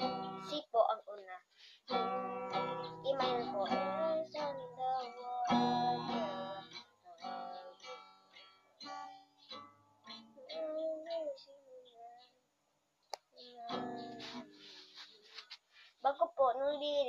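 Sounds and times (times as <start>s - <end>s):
acoustic guitar strumming chords: 0.0s - 0.6s, 1.9s - 11.5s, 13.4s - 15.4s
child singing softly: 0.0s - 12.4s, 13.2s - 14.8s, 16.0s - 17.0s.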